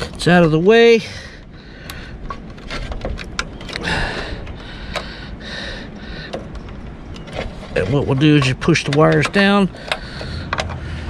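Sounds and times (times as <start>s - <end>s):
low steady background noise: 0.0s - 11.0s
wires and connectors clicking: 6.2s - 10.8s.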